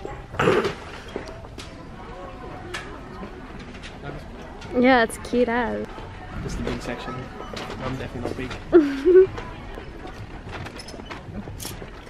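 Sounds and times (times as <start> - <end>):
shop background noise: 0.0 - 12.0.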